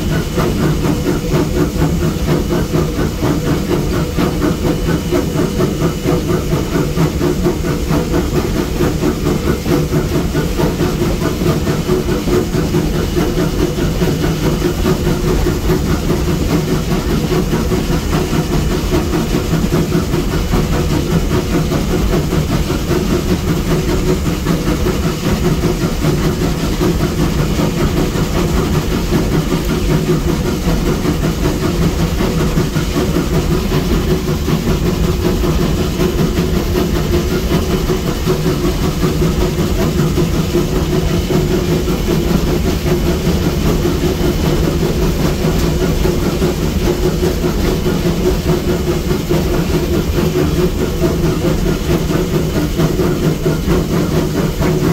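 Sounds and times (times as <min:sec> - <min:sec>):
steam locomotive rumbling: 0:00.0 - 0:54.9.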